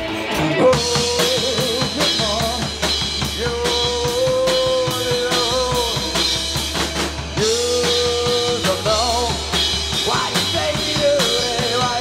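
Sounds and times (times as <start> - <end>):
rock band playing live: 0.0 - 12.0
sliding guitar lead melody: 0.0 - 12.0.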